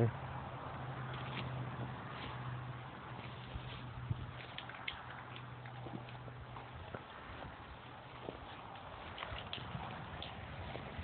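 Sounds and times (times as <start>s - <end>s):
footsteps on dry ground: 1.1s - 11.0s.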